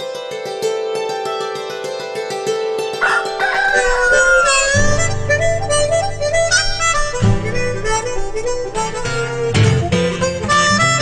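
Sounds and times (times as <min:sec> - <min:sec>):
light music: 0:00.0 - 0:11.0
rooster crowing: 0:03.0 - 0:05.2
harmonica chord: 0:03.0 - 0:11.0.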